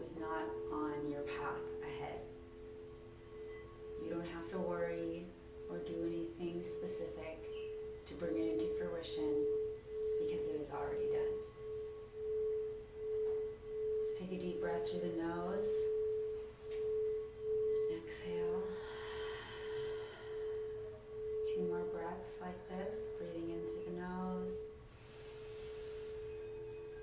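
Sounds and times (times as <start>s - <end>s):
singing bowl tone: 0.0s - 27.0s.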